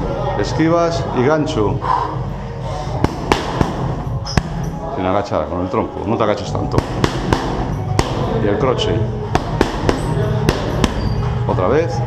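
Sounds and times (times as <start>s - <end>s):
boxing gloves hitting focus mitts: 3.0s - 4.6s, 6.7s - 8.4s, 9.3s - 11.1s.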